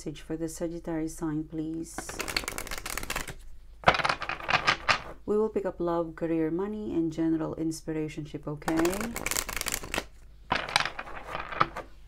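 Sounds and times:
cards being shuffled: 0:02.0 - 0:05.2, 0:08.7 - 0:12.0.

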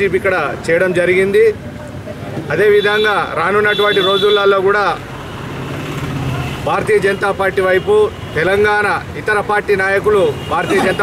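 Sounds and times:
man speaking loudly: 0:02.5 - 0:05.0, 0:06.6 - 0:11.0.

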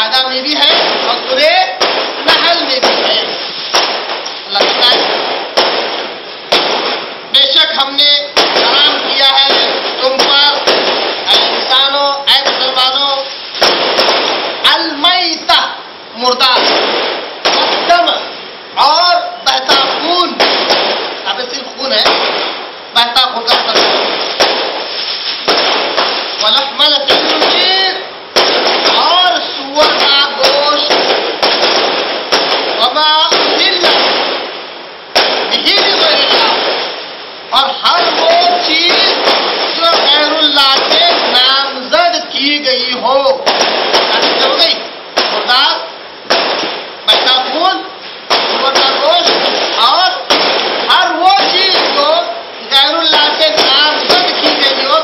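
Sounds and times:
man's distorted voice: 0:00.0 - 0:03.4, 0:04.4 - 0:05.2, 0:07.3 - 0:13.4, 0:14.6 - 0:16.8, 0:17.5 - 0:22.2, 0:22.9 - 0:24.0, 0:26.4 - 0:31.2, 0:32.8 - 0:34.2, 0:35.5 - 0:36.8, 0:37.5 - 0:46.0, 0:47.1 - 0:55.0
bursts of hissing noise: 0:00.0 - 0:55.0.

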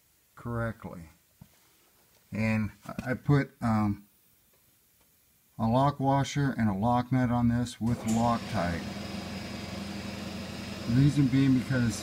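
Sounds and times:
mechanical hum with high whine: 0:07.7 - 0:12.0.

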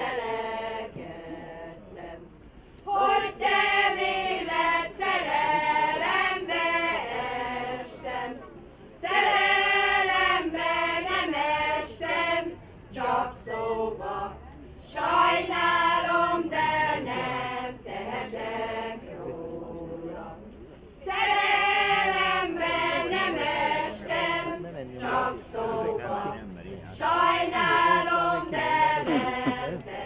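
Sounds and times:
choir singing unaccompanied: 0:00.0 - 0:08.4, 0:09.0 - 0:30.0.

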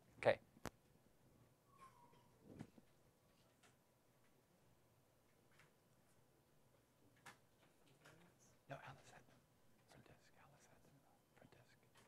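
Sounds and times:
faint whispering voices: 0:07.8 - 0:12.0.

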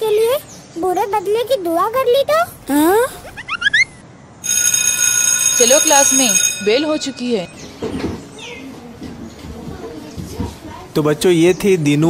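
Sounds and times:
school bell ringing: 0:04.4 - 0:07.9.

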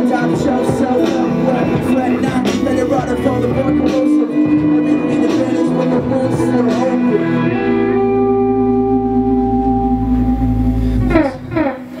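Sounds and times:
live band sustained chord: 0:00.0 - 0:12.0.

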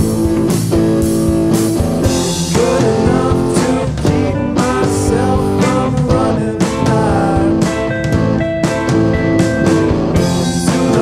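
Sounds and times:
bass guitar: 0:00.0 - 0:11.0
drum kit beat: 0:00.0 - 0:11.0
rock band playing live: 0:00.0 - 0:11.0
strummed electric guitars: 0:00.0 - 0:11.0.

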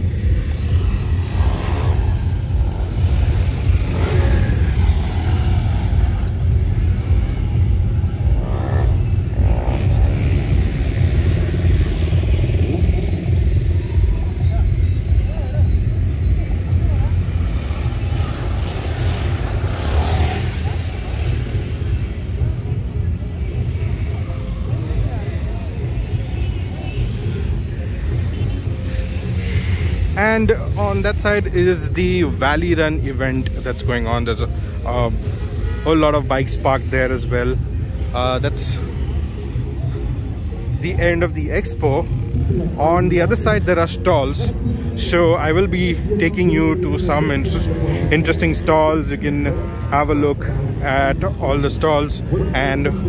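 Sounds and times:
dirt bike engines: 0:00.0 - 0:53.0.

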